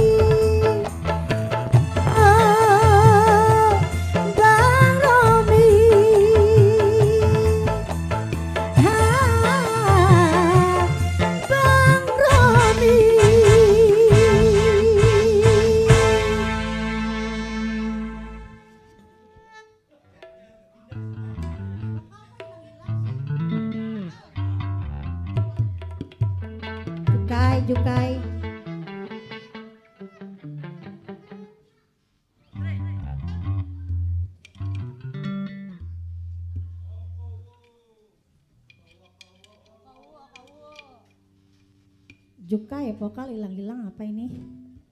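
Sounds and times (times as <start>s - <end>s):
plucked bass and guitar notes: 0.0s - 18.6s, 20.9s - 22.1s, 22.9s - 29.6s, 32.6s - 37.4s
faint talking of people: 18.7s - 26.2s, 29.1s - 34.0s.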